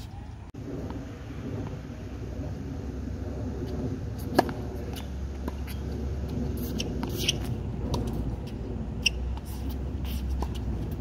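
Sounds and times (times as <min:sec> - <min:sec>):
steady low rumble: 0:00.1 - 0:11.0
tennis ball hits and bounces: 0:04.2 - 0:11.0.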